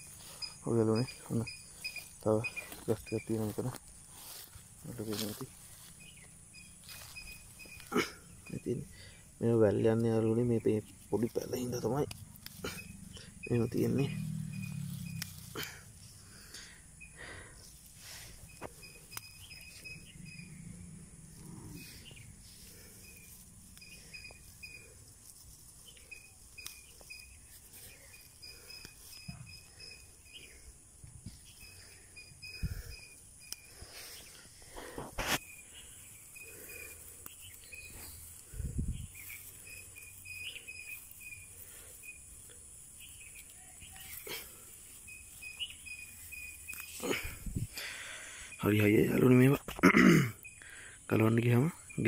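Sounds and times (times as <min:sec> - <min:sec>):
hand rustling grass stems: 0:00.0 - 0:20.0, 0:21.3 - 0:48.0
insect chirps: 0:00.0 - 0:52.0
insects droning: 0:00.0 - 0:52.0.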